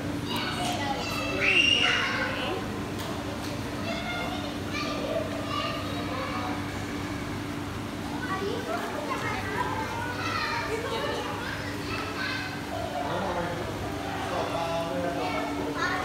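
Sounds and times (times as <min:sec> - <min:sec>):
steady low hum: 0:00.0 - 0:16.0
high-pitched voices chattering: 0:00.2 - 0:02.8, 0:03.6 - 0:16.0.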